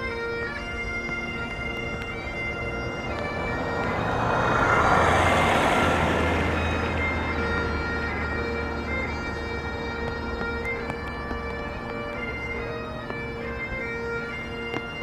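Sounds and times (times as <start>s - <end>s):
bagpipes playing a lament: 0.0s - 15.0s
low engine rumble: 0.2s - 15.0s
vehicle passing: 0.6s - 15.0s.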